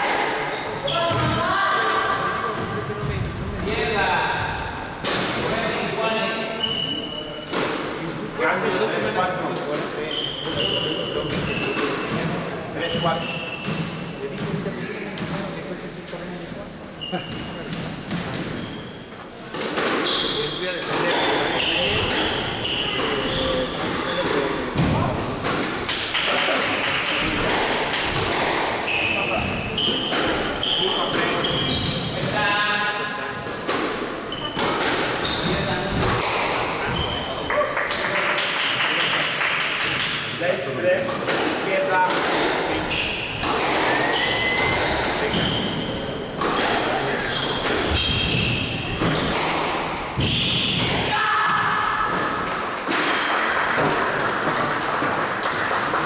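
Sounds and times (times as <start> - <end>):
sneakers squeaking on floor: 0.5 - 1.5, 6.4 - 7.7, 10.0 - 14.6, 17.0 - 24.4, 28.8 - 32.4, 34.2 - 36.0, 36.8 - 37.6, 42.8 - 49.6, 50.2 - 51.1
squash ball hits: 33.6 - 37.0, 41.2 - 45.6, 46.4 - 55.6.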